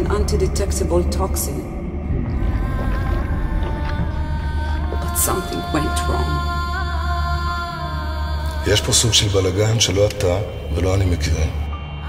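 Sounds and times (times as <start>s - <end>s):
deep low rumble: 0.0s - 12.0s
held drone tones: 0.0s - 12.0s.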